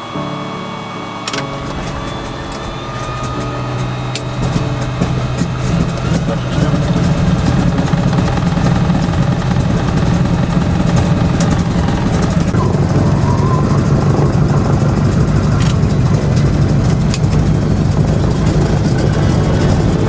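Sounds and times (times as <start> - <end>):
aircraft engine and propeller: 1.2 - 20.0.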